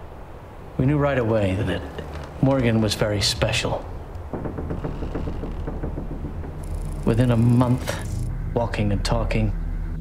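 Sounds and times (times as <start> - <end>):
low rumbling drone: 2.4 - 10.0.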